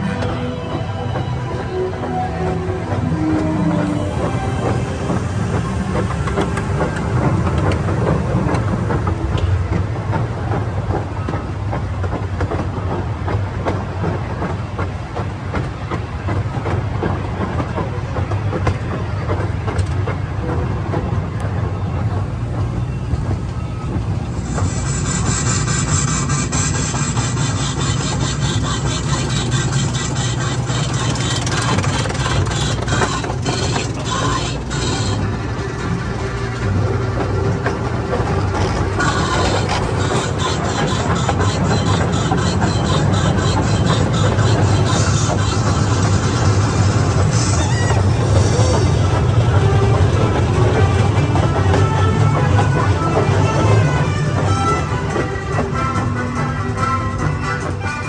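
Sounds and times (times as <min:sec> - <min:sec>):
train cars rumbling on rails: 0:00.0 - 0:58.0
hissing rattle: 0:24.4 - 0:49.6.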